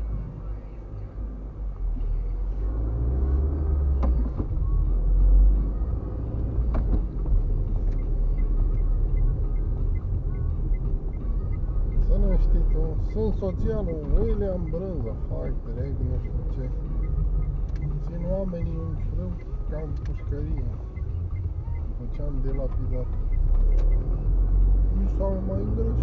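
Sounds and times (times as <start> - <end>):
car engine and tyres rumbling: 0.0 - 26.0.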